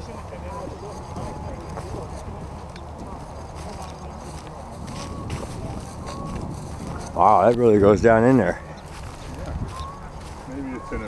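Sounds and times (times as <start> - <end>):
footsteps in dry grass: 0.0 - 11.0
low wind rumble: 0.0 - 11.0
people chattering: 0.0 - 11.0.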